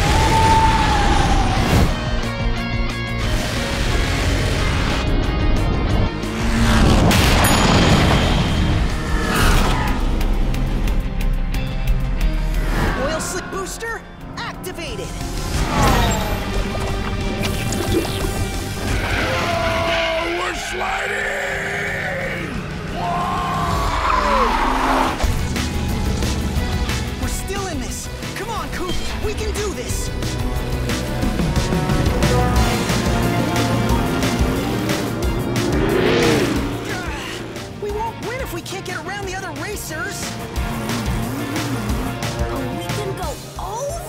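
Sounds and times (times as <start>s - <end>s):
background music: 0.0s - 44.0s
race car engine: 1.3s - 14.3s, 18.2s - 28.3s, 30.0s - 43.2s
crash sound effects: 6.6s - 9.8s
pitch-sliding whoosh effects: 12.4s - 14.4s.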